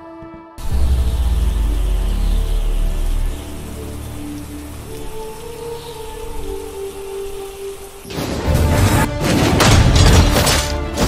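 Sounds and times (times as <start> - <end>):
soft sustained background music: 0.0 - 11.0
steady rain falling: 0.6 - 9.2.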